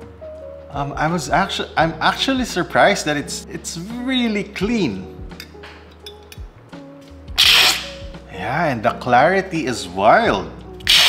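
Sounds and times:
soft background music: 0.0 - 11.0
spoon clinking against glass: 5.3 - 6.4.

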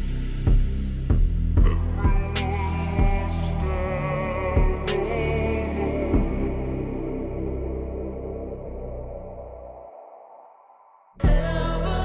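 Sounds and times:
deep bass: 0.0 - 9.9, 11.2 - 12.0.

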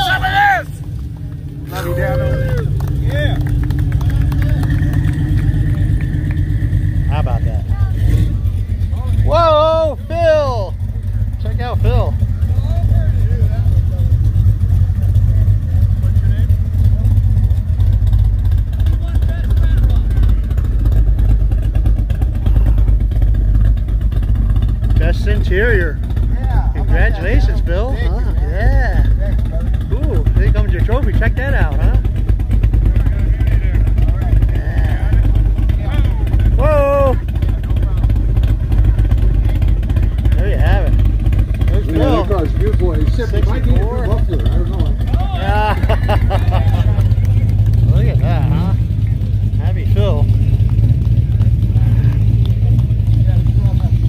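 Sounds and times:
car engine idling: 0.0 - 54.0
crowd voices: 0.0 - 54.0.

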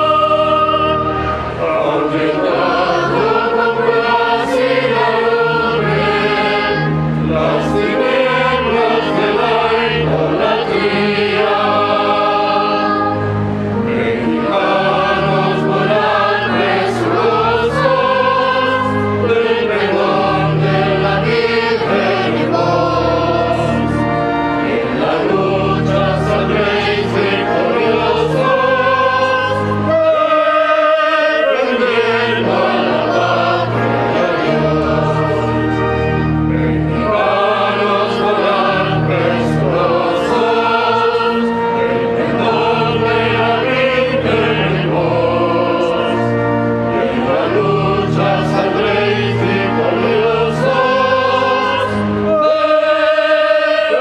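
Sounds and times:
sustained low accompanying notes: 0.0 - 53.4
choir singing a hymn: 0.0 - 54.0.

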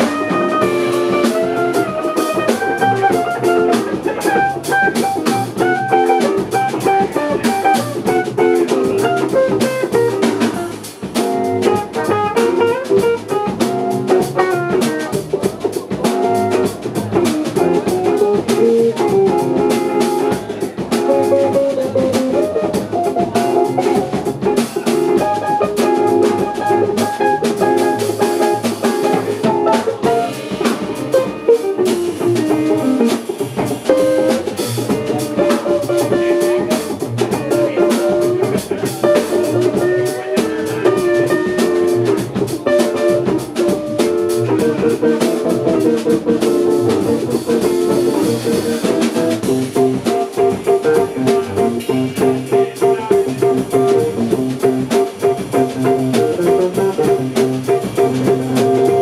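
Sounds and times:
drum kit: 0.0 - 59.0
electric guitars playing: 0.0 - 59.0.

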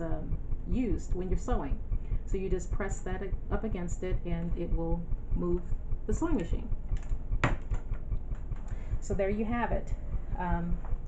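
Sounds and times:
sharp knock: 7.4 - 8.0.

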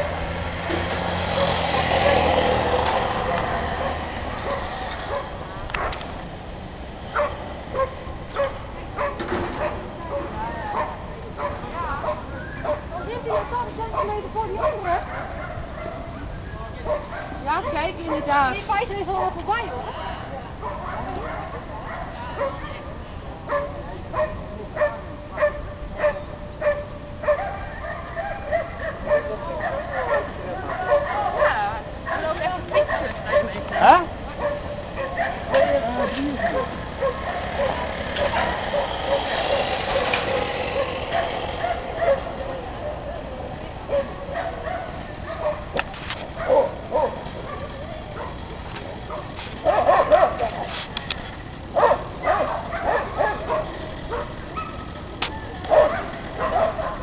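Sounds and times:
dogs barking excitedly: 0.0 - 6.3, 7.0 - 57.0
dog yelps: 7.2 - 18.4, 23.5 - 43.1, 43.9 - 45.7, 49.1 - 50.7, 51.8 - 57.0.

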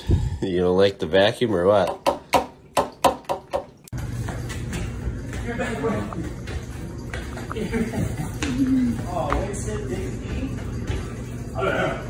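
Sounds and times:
low room hum: 3.7 - 12.0.

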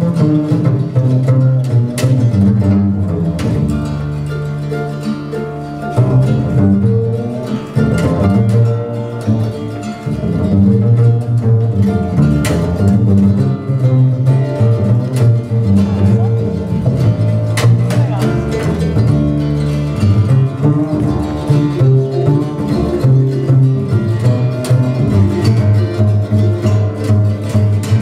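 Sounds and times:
double bass plucked notes: 0.0 - 28.0.

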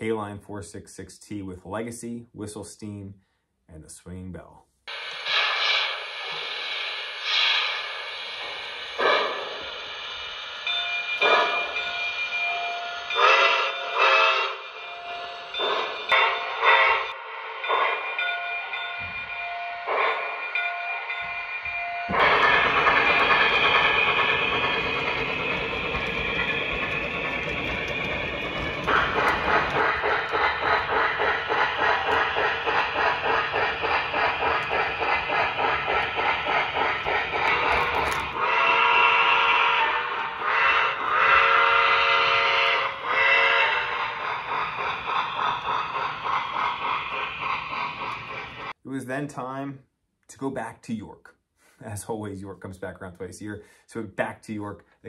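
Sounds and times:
model locomotive chuffing: 4.9 - 48.8
steam effects: 4.9 - 49.0
locomotive whistle blasts: 38.0 - 44.0.

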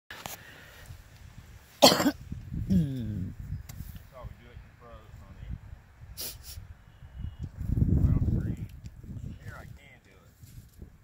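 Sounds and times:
person coughing: 1.8 - 3.0.

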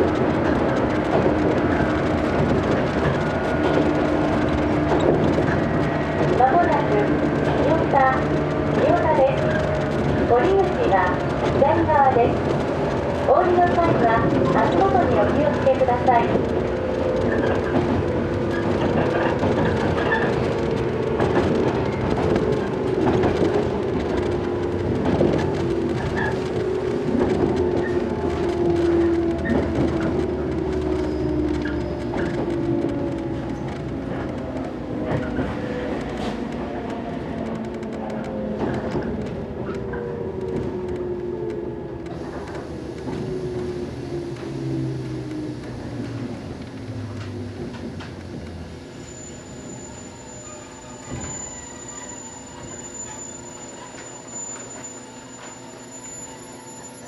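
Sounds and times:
train motor and gear whine: 0.0 - 57.0
train rumble: 0.0 - 57.0
wheels clicking on track: 0.0 - 57.0.

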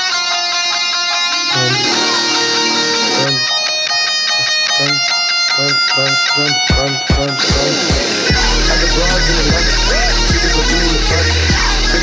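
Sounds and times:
electric guitar melody: 0.0 - 12.0
rapped vocals: 1.4 - 3.6, 4.3 - 12.0
trap backing track bass pulses: 5.6 - 12.0.

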